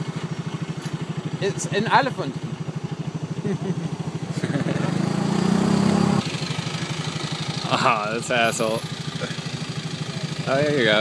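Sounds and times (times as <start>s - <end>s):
engine chugging at low speed: 0.0s - 11.0s
second engine humming: 0.0s - 11.0s.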